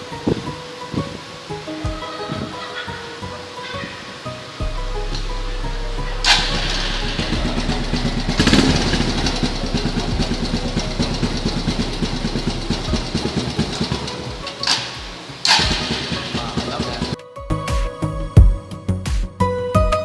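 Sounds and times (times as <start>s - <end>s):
motorcycle engine idling: 4.6s - 17.2s.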